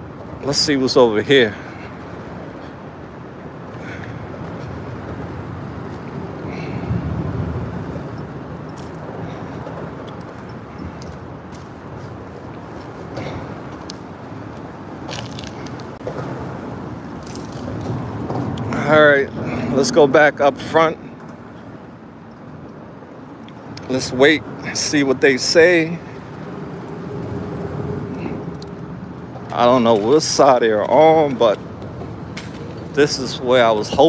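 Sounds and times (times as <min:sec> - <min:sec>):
road traffic rumble: 0:00.0 - 0:34.0.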